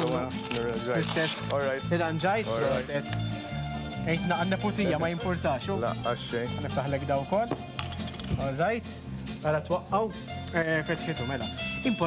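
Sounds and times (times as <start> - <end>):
background music: 0.0 - 12.0
knocks on wooden chopping board: 7.5 - 7.7.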